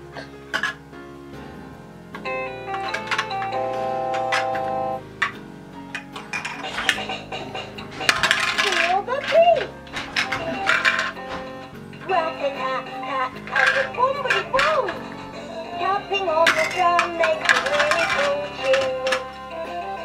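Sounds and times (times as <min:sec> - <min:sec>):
music playing: 0:00.0 - 0:20.0
plastic pieces clattering: 0:00.5 - 0:00.8, 0:02.7 - 0:20.0.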